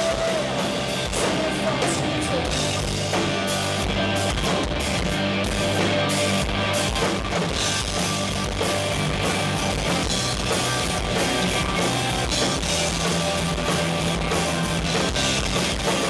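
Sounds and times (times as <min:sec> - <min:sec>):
person singing: 0:00.0 - 0:05.1
live rock band playing: 0:00.0 - 0:16.0.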